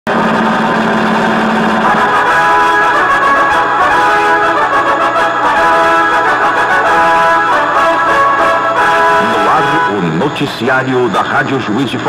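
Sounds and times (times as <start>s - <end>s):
pitched music: 0.1s - 11.1s
loud machine-like buzzing: 0.1s - 12.0s.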